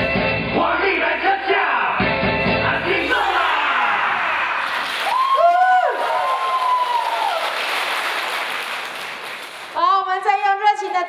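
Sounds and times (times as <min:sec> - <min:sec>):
audience applause: 0:04.2 - 0:09.8.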